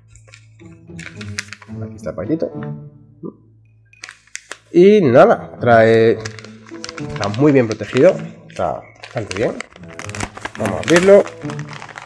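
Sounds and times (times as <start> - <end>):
paper envelope crinkling: 0.0 - 1.8, 4.0 - 4.8, 6.0 - 12.0.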